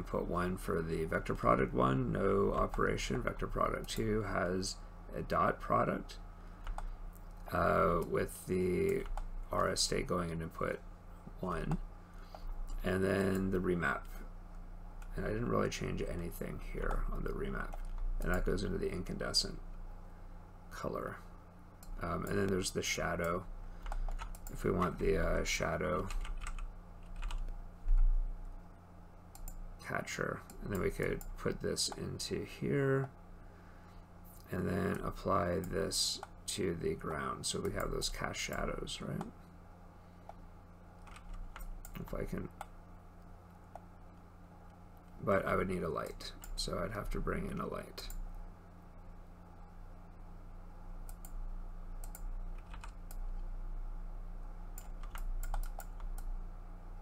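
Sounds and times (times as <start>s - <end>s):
steady low hum: 0.0s - 57.0s
computer keyboard key clicks: 54.8s - 56.3s.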